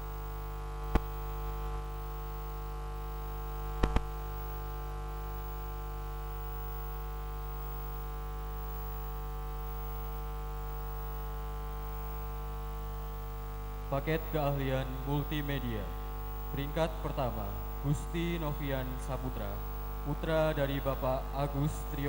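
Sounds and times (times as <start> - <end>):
electrical mains hum: 0.0 - 22.0
sharp clicks: 3.8 - 4.1.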